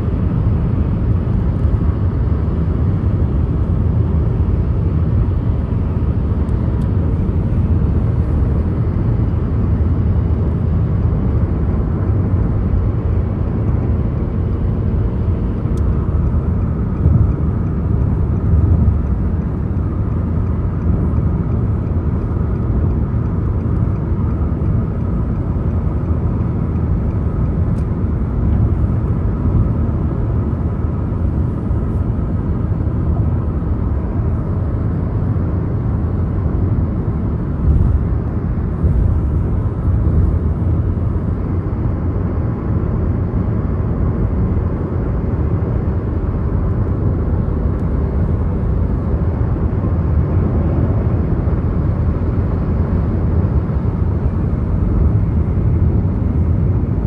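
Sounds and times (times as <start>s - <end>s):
car interior road rumble: 0.0s - 57.0s.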